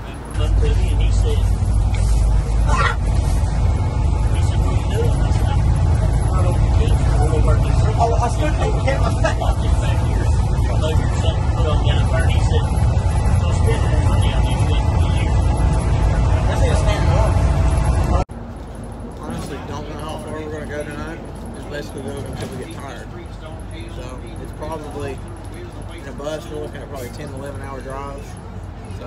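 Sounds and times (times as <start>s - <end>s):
bus engine and road rumble: 0.0s - 29.0s
indistinct voices: 0.0s - 29.0s.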